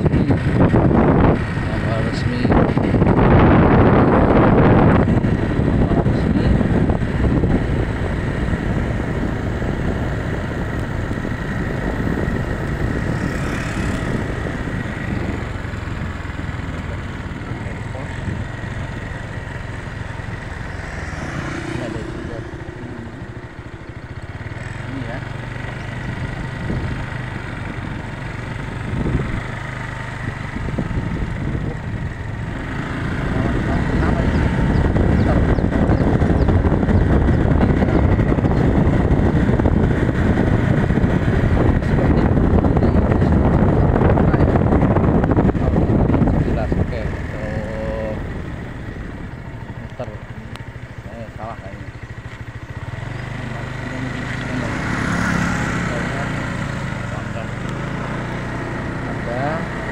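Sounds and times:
motorcycle running: 0.0 - 59.9
wind and road noise on microphone: 0.0 - 59.9.

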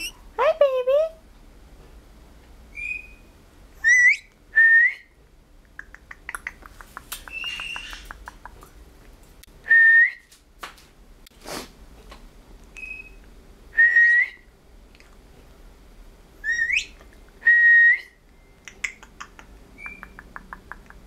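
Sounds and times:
parrot whistling: 2.7 - 5.1, 16.4 - 18.2, 19.8 - 20.2
breathy puff: 11.4 - 11.8.

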